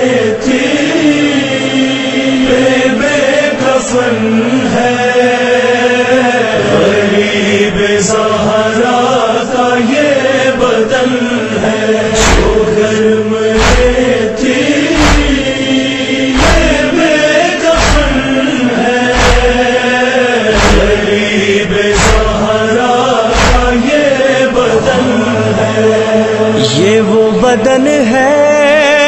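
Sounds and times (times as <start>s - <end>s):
voices chanting a lament: 0.0s - 29.0s
regular thump: 12.2s - 12.8s, 13.6s - 14.2s, 14.9s - 15.6s, 16.4s - 17.0s, 17.7s - 18.4s, 19.1s - 19.8s, 20.5s - 21.2s, 21.8s - 22.6s, 23.3s - 23.9s.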